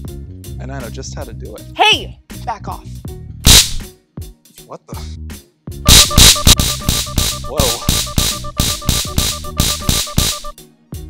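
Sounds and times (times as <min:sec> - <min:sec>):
sharp electric crackling bursts: 0:03.5 - 0:03.8, 0:05.9 - 0:10.6
fast-pulsing electronic alarm beep: 0:05.9 - 0:10.6.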